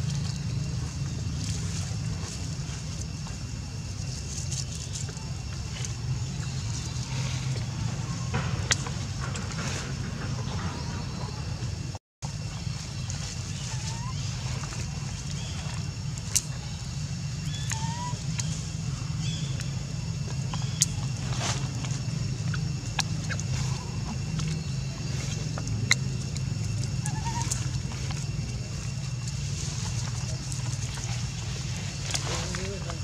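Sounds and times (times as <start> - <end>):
low outdoor rumble: 0.0 - 33.0.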